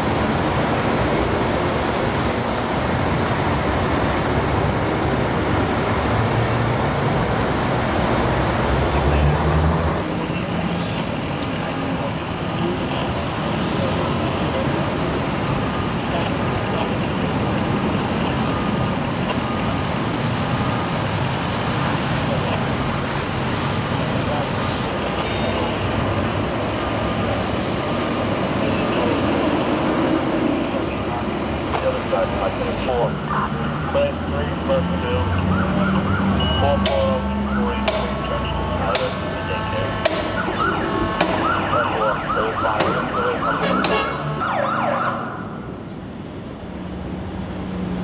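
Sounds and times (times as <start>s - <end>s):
highway traffic: 0.0s - 48.0s
indistinct voices: 28.5s - 44.3s.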